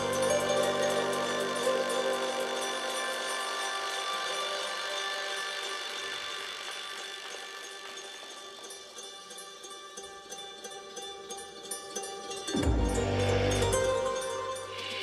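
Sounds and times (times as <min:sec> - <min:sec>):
music with sustained held notes: 0:00.0 - 0:15.0.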